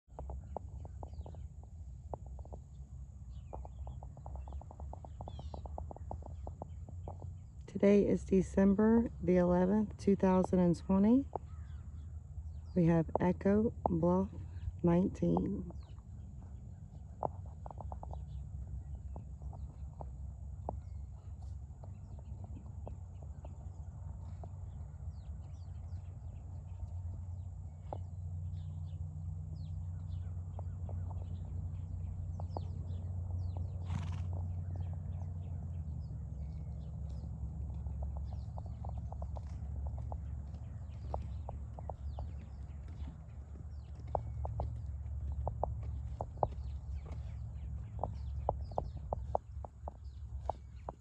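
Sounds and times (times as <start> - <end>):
horse hoofbeats on dirt: 0.1 - 51.0
low rumble: 0.1 - 51.0.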